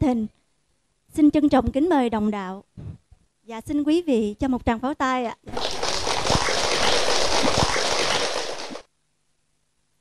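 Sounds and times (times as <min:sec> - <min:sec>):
audience applauding: 0:05.5 - 0:08.8.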